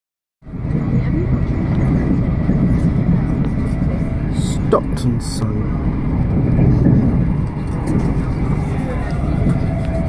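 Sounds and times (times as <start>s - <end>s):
train running rumble inside coach: 0.4s - 10.0s.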